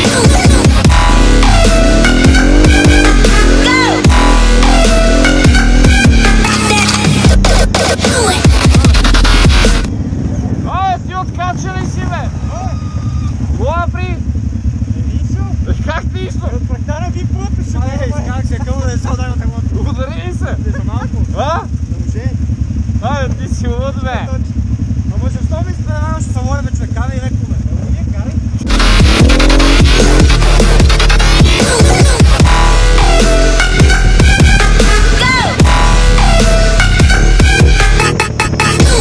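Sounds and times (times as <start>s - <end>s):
dubstep music with heavy beat: 0.0s - 9.9s, 28.6s - 39.0s
quad bike engines running: 0.0s - 39.0s
riders' voices: 10.1s - 29.6s.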